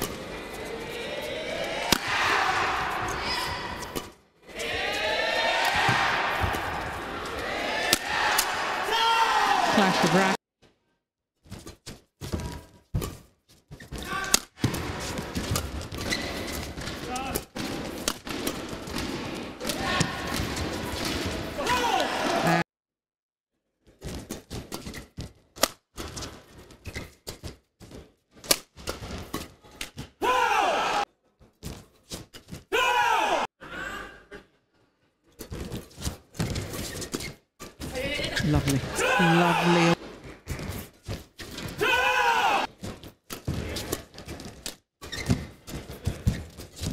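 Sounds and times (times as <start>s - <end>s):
crowd shouting and cheering: 0.9s - 3.8s, 4.5s - 10.4s, 21.6s - 22.6s, 30.2s - 31.1s, 32.8s - 33.5s, 38.5s - 40.0s, 41.8s - 42.7s
rackets striking shuttlecock: 1.8s - 2.2s, 7.8s - 8.6s
crowd noise: 9.5s - 10.4s, 22.0s - 22.6s, 38.4s - 40.0s.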